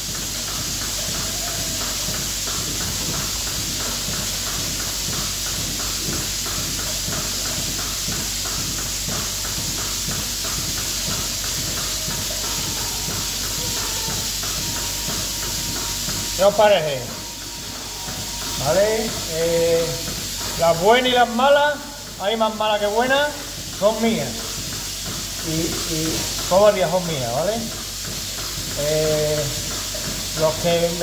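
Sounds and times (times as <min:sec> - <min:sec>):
milking machine hissing: 0:00.0 - 0:31.0
rapid pulsator ticking: 0:00.0 - 0:31.0.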